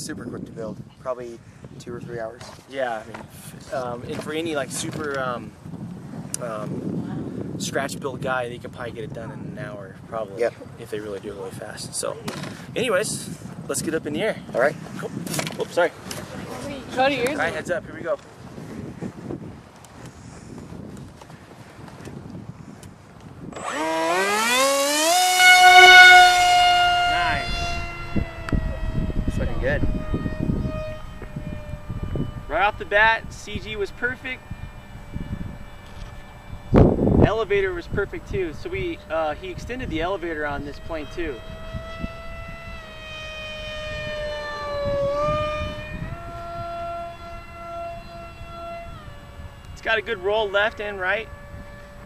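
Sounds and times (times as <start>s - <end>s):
wind buffeting microphone: 0.0s - 52.0s
model plane motor whining: 22.7s - 52.0s.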